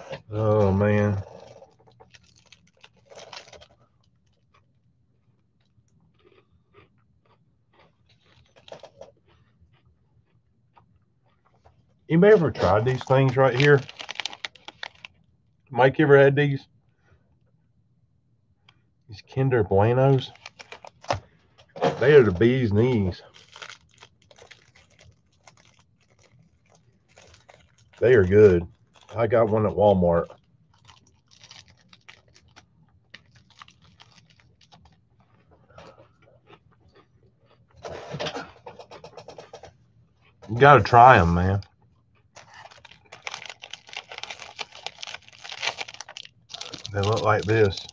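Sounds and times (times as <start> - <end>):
faint crackles and clicks: 0.0 - 12.0, 12.6 - 15.3, 20.1 - 29.6, 30.2 - 36.2, 41.5 - 47.9
faint chewing of wafer bar: 1.1 - 12.1, 12.8 - 15.3, 20.2 - 21.8, 22.4 - 29.2, 30.2 - 40.5, 41.6 - 47.9.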